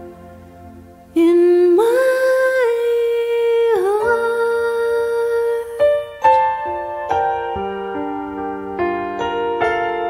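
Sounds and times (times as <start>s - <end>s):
person humming a slow melody: 0.0s - 6.4s
quiet ambient music: 0.0s - 10.0s.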